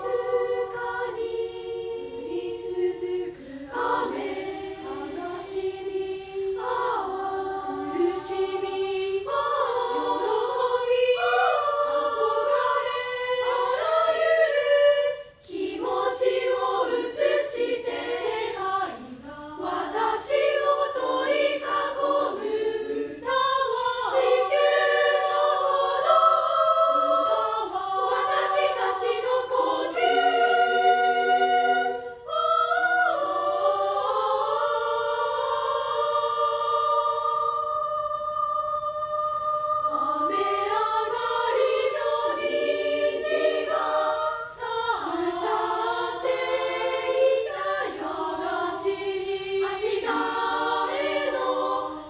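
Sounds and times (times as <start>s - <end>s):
girls choir singing: 0.0s - 52.0s.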